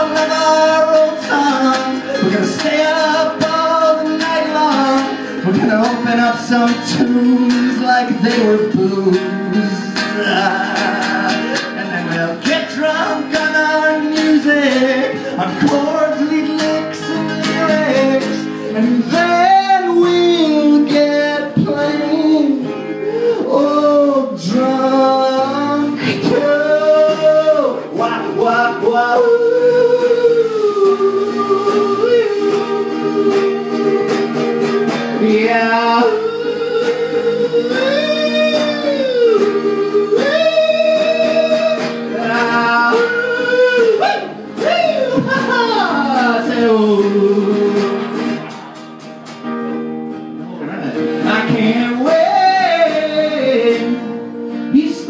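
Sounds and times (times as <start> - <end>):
man singing: 0.0 - 48.4, 50.5 - 55.0
strummed acoustic guitar: 0.0 - 55.0.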